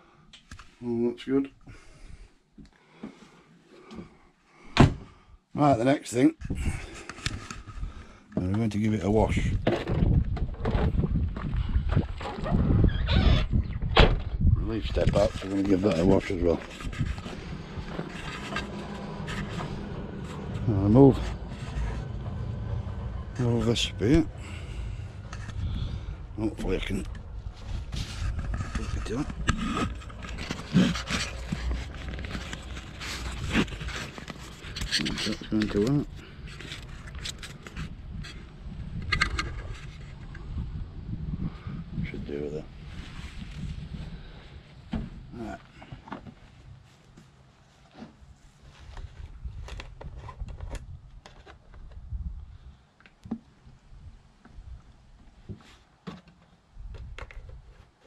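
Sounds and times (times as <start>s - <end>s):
wind buffeting microphone: 9.1s - 45.3s, 49.0s - 52.8s
short scrapes: 15.0s - 26.1s, 26.7s - 38.5s.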